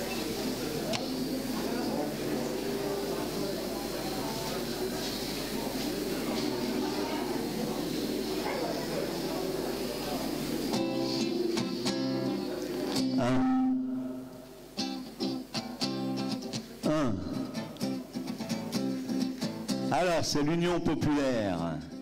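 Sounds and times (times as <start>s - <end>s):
acoustic guitar strumming: 0.0s - 22.0s
crowd chatter in a hall: 0.0s - 22.0s.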